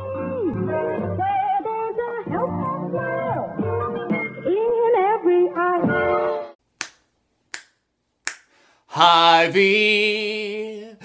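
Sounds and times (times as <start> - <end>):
finger snaps: 6.8 - 8.6
man singing unaccompanied: 8.9 - 11.0.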